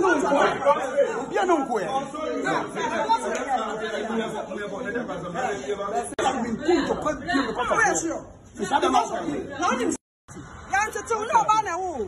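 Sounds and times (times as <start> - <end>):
people talking over one another: 0.0 - 12.0.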